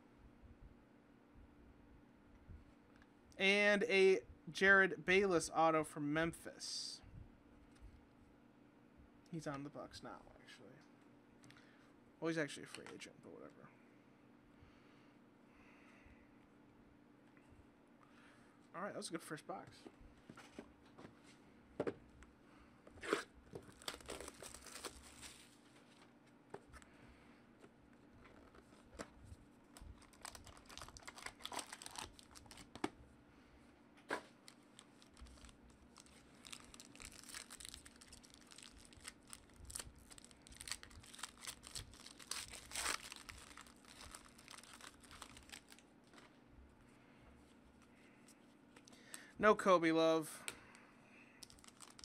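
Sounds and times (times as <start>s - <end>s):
faint steady hum: 0.0s - 52.0s
cardboard and cards rustling: 23.0s - 26.8s, 28.2s - 32.9s, 34.1s - 46.4s
foil wrapper tearing and crinkling: 23.7s - 25.5s, 30.0s - 32.8s, 34.4s - 45.8s, 51.4s - 52.0s.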